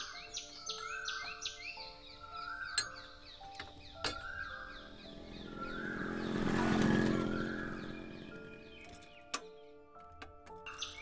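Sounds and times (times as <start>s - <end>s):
vehicle engine droning past: 4.7s - 8.9s.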